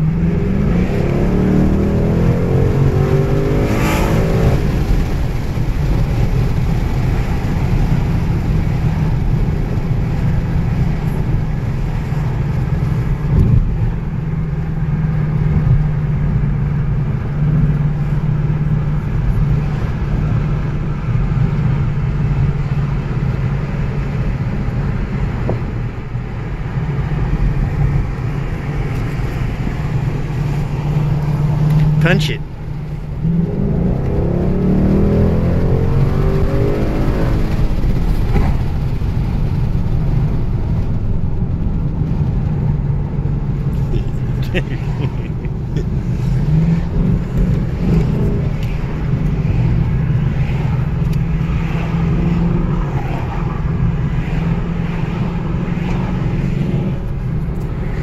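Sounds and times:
car engine inside cabin: 0.0s - 58.0s
road noise: 0.0s - 58.0s.

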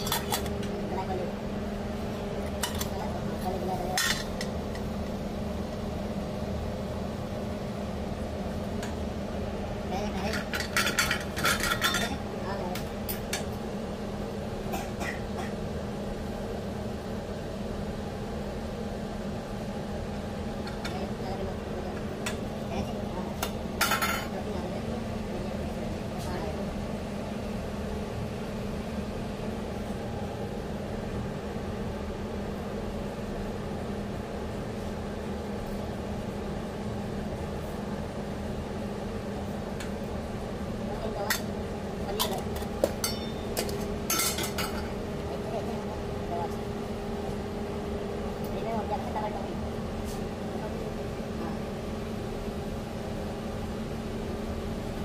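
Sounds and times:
steady low hum: 0.0s - 55.0s
metal pans clinking: 10.3s - 12.2s, 42.1s - 44.9s.

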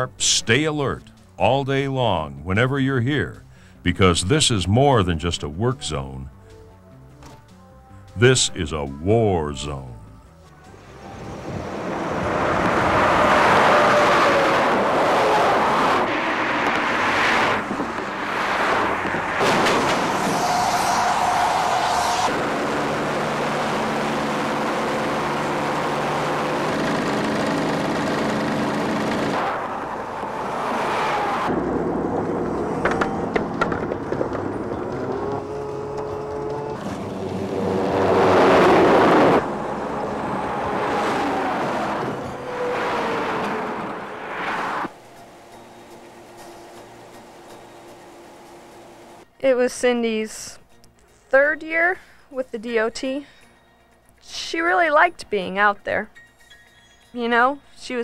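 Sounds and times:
steady engine hum: 9.7s - 49.3s
motor vehicles passing: 10.3s - 49.2s
heavy construction machinery: 22.3s - 29.4s, 31.5s - 40.9s.

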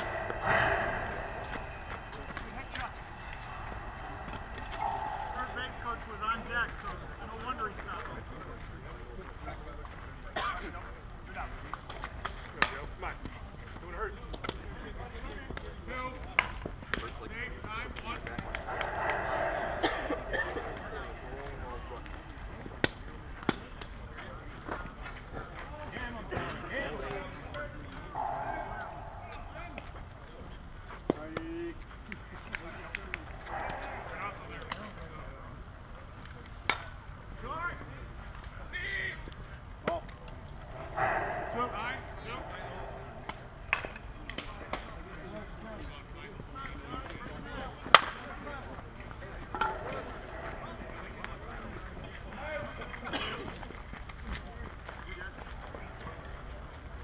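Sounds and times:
players calling: 0.0s - 9.0s, 17.0s - 36.8s, 37.4s - 57.0s
bat hitting ball: 40.8s - 44.9s.

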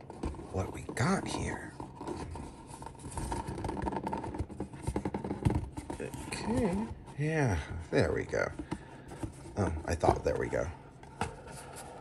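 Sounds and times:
cardboard box scraping and rubbing: 0.0s - 7.3s.

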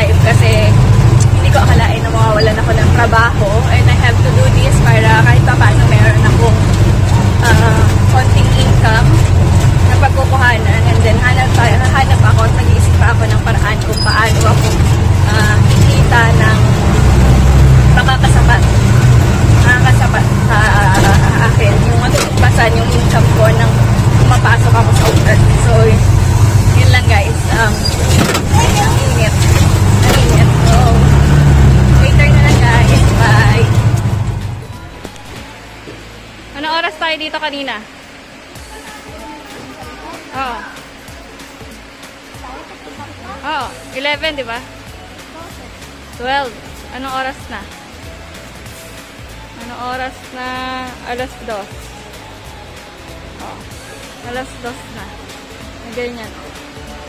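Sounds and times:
woman talking: 0.0s - 33.9s, 36.5s - 38.0s, 38.6s - 41.0s, 42.4s - 47.8s, 49.6s - 51.9s, 53.3s - 56.5s
vehicle engine drone: 0.0s - 57.0s.

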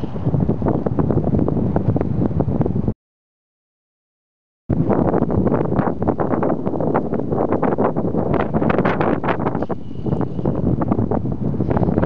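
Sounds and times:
wind buffeting microphone: 0.0s - 3.0s, 4.7s - 12.0s.

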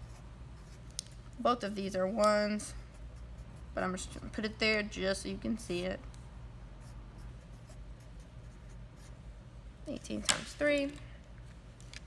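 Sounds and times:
marker scratching on paper: 0.0s - 1.1s, 2.6s - 4.1s, 6.8s - 9.2s.

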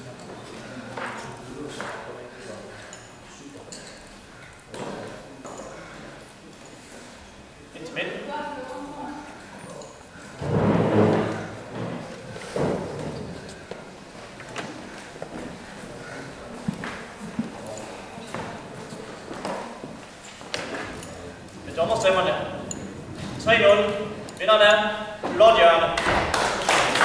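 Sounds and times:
indistinct voices in echoing hall: 0.0s - 27.0s.

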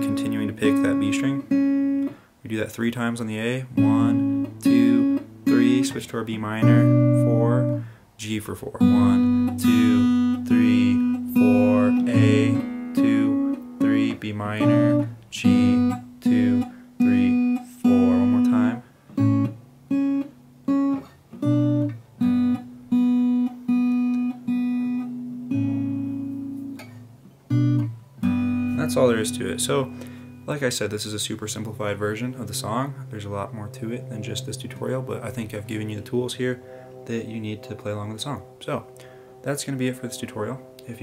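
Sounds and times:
acoustic guitar picked chords: 0.0s - 41.0s.

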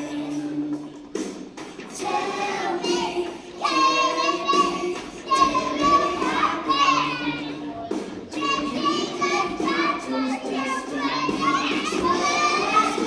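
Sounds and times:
backing music: 0.0s - 13.0s
children singing: 1.8s - 13.0s.

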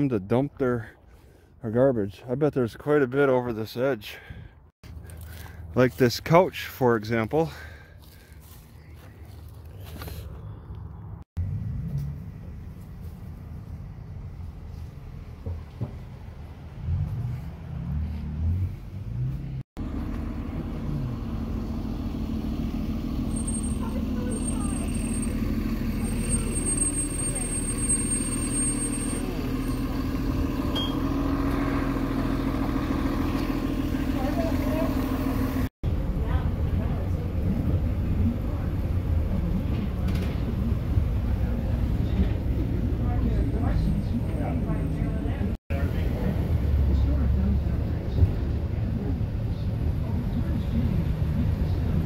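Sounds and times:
vehicle engine idling: 7.4s - 52.0s.

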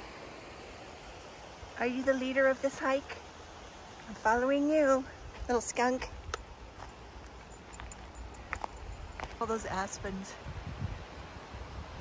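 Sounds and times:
footsteps on forest trail: 5.3s - 9.9s.

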